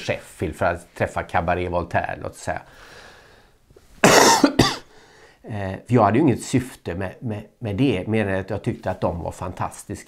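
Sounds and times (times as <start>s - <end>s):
person coughing: 4.0s - 4.9s.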